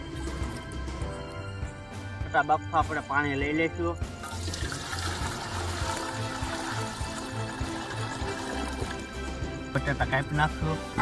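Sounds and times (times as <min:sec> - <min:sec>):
background music: 0:00.0 - 0:11.0
water pouring into metal pot: 0:04.1 - 0:09.7.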